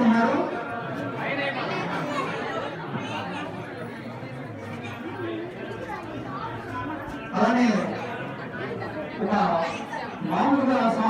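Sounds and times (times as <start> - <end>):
hubbub of overlapping voices: 0.0 - 11.0.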